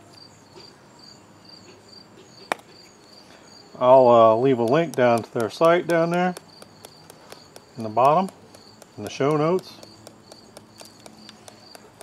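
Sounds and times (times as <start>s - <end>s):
insect chirping trill: 0.2s - 4.6s, 5.7s - 12.0s.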